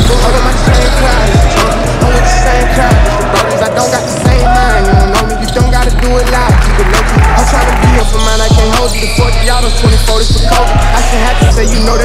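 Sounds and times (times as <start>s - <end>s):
deep bass kicks: 0.0s - 3.3s, 4.3s - 5.8s.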